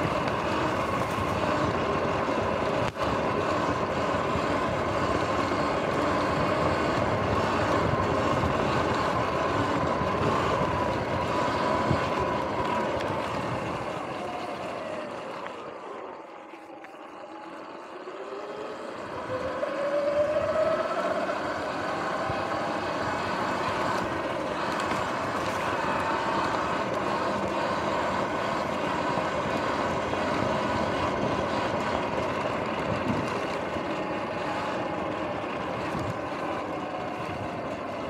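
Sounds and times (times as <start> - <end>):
tyre and wind noise: 0.0 - 15.9, 18.4 - 38.0
electric motor whining: 0.0 - 38.0.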